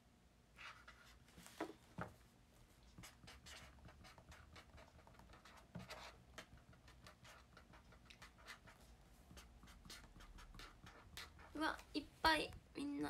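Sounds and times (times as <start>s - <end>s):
pen scratching on paper: 3.0s - 11.6s.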